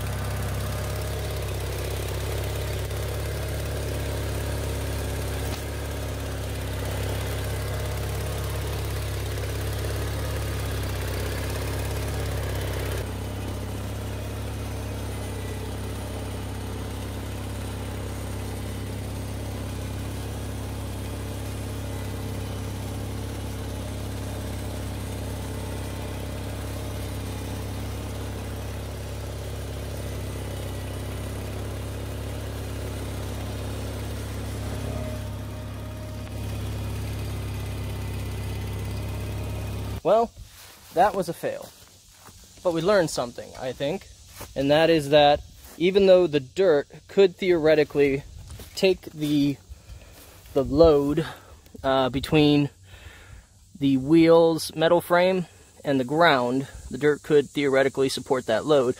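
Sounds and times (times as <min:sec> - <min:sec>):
tractor engine running: 0:00.0 - 0:58.9.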